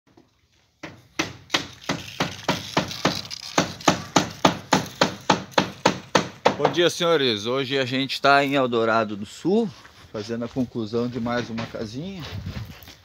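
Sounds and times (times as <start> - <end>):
hammer striking wood: 0.8 - 6.8.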